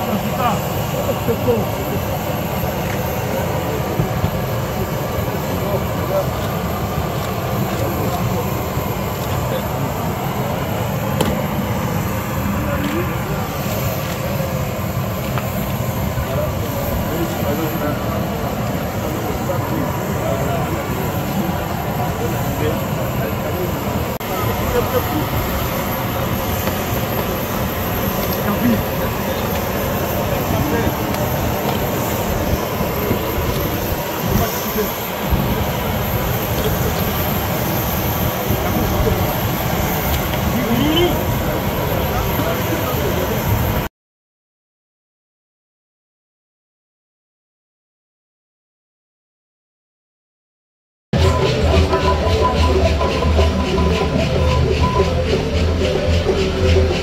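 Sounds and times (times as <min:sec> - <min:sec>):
people talking: 0:00.0 - 0:43.8, 0:51.2 - 0:57.0
aircraft turbine running: 0:00.0 - 0:43.9, 0:51.2 - 0:57.0.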